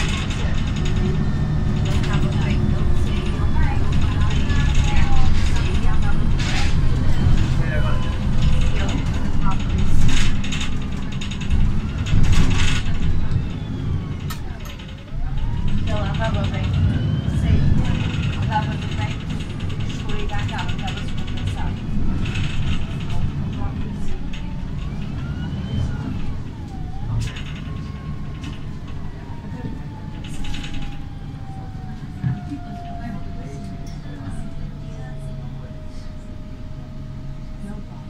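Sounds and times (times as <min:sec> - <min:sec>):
interior fittings rattling: 0:00.0 - 0:35.2
whining tones: 0:00.0 - 0:37.8
bus engine rumble: 0:00.0 - 0:38.0.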